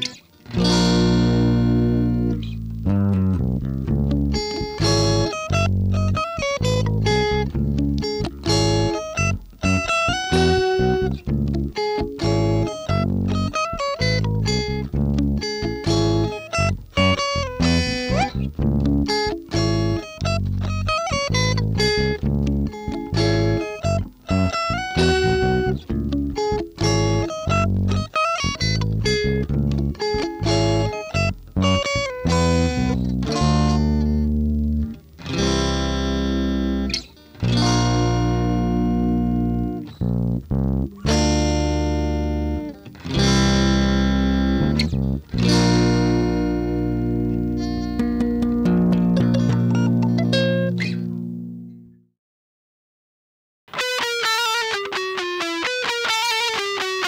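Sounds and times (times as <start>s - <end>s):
rock riff on guitar and bass: 0.0s - 51.9s.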